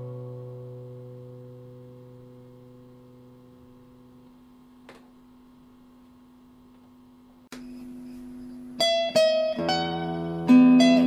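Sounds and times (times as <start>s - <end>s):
acoustic guitar notes ringing: 0.0s - 4.2s, 7.6s - 11.0s.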